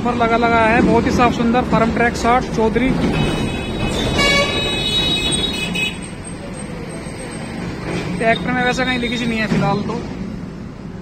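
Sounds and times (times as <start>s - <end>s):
high-pitched vehicle horn: 3.2s - 6.1s.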